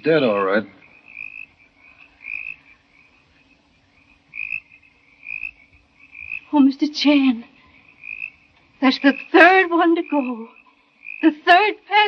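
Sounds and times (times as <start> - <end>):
faint low hum: 0.0 - 12.0
frogs chirping: 0.0 - 12.0.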